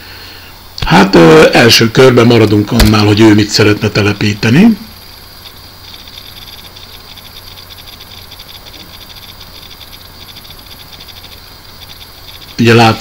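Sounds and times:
low mains hum and hiss: 0.0 - 13.0
faint high-pitched ticking: 2.8 - 13.0.

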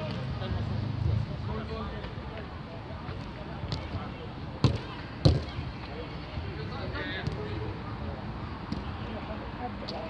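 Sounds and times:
football kick thud: 4.6 - 5.6.

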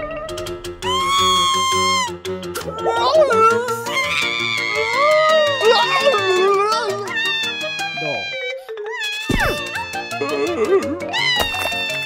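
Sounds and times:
cartoon background music with beat: 0.0 - 12.0
cartoon character squealing cry: 0.8 - 2.1, 3.9 - 12.0.

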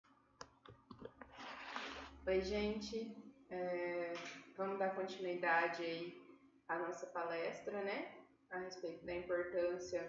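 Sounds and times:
person speaking: 0.9 - 6.1, 8.6 - 10.0.

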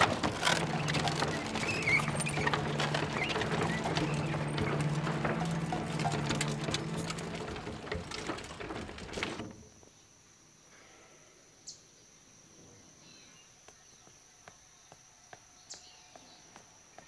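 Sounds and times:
horse hooves on pavement: 0.0 - 9.4.

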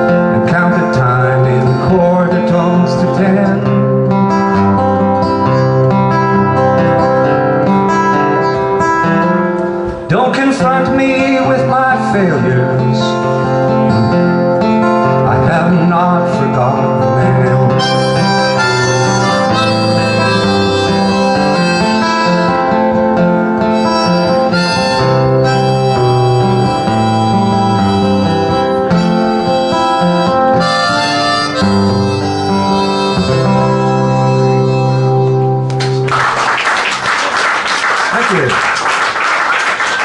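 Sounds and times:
harmonica: 0.0 - 10.1, 11.5 - 35.8
strummed acoustic guitar: 0.0 - 36.2.

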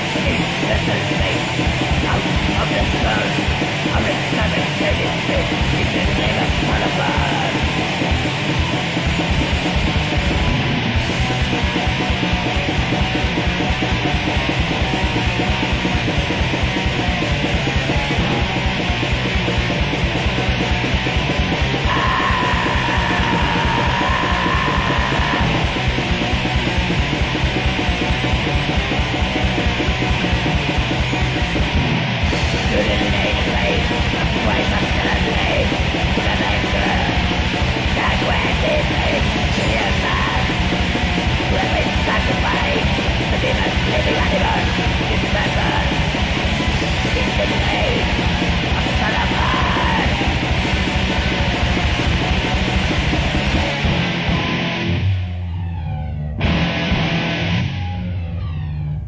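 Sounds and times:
harsh yelled vocal: 0.0 - 12.5, 21.0 - 27.0, 32.4 - 54.0
fast drumming: 0.0 - 54.3
distorted guitar: 0.0 - 59.0.

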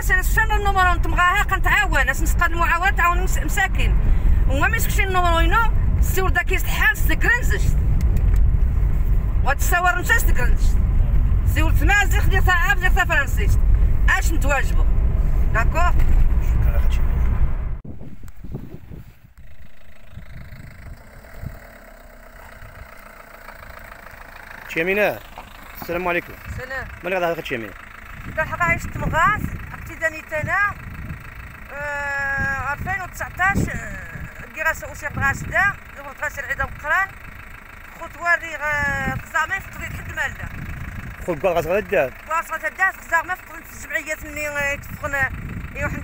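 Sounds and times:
car engine idling: 0.0 - 46.0
low steady rumble: 0.0 - 46.0
person exclaiming: 31.7 - 32.7.

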